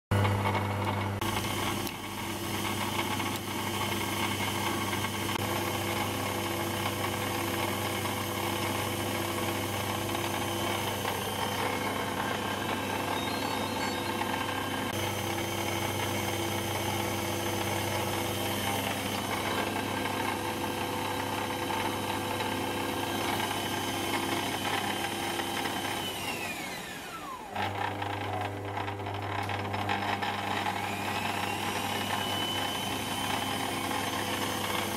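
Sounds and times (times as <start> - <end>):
lathe motor and gear whine: 0.2 - 34.9.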